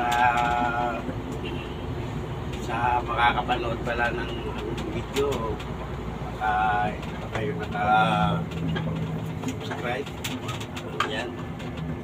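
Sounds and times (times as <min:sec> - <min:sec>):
truck engine and road noise: 0:00.0 - 0:12.0.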